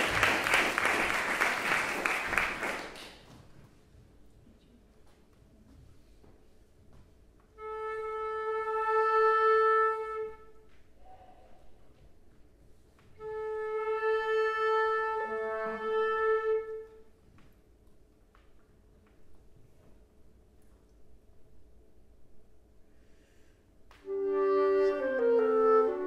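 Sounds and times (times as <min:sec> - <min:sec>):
flute and clarinet duo: 0:07.6 - 0:11.3, 0:13.1 - 0:17.0, 0:24.0 - 0:26.0.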